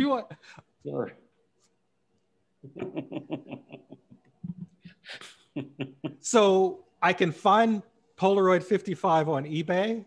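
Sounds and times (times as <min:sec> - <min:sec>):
person laughing: 0:02.7 - 0:06.3.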